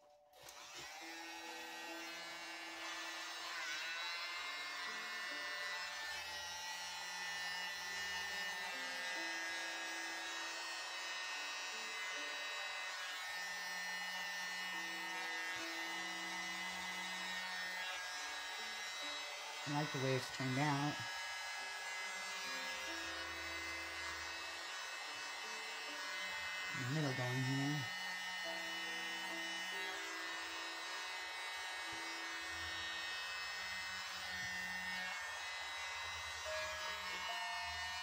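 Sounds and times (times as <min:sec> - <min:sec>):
small electric motor running: 0:00.3 - 0:38.0.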